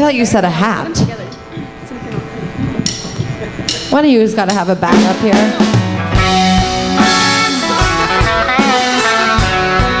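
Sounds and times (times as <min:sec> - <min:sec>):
low voices: 0:00.0 - 0:09.7.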